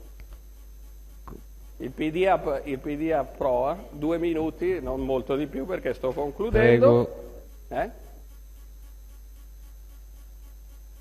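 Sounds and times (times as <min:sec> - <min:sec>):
low electrical hum with buzz: 0:00.0 - 0:11.0.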